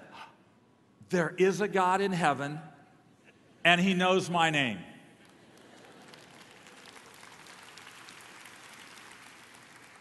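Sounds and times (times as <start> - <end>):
congregation applauding: 5.2 - 10.0.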